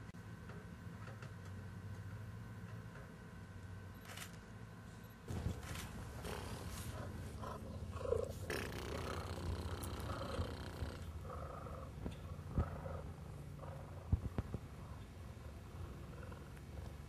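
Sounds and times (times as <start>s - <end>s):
cheetah purring: 5.3s - 17.0s.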